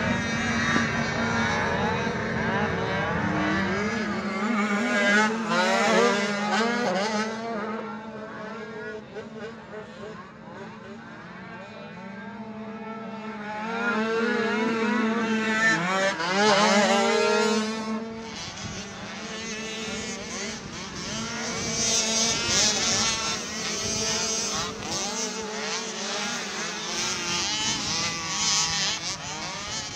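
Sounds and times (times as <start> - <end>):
atv engine revving: 0.0 - 8.2, 13.1 - 29.9.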